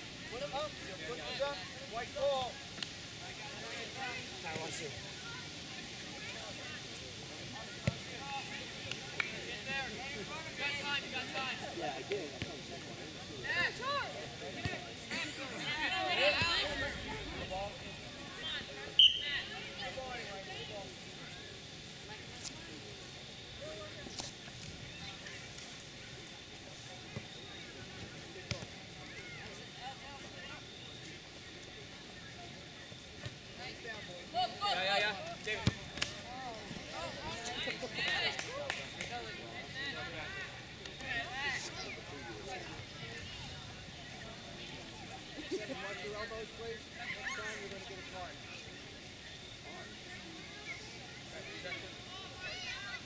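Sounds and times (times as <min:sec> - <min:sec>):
open-air background: 0:00.0 - 0:53.0
players and spectators shouting: 0:13.4 - 0:20.4.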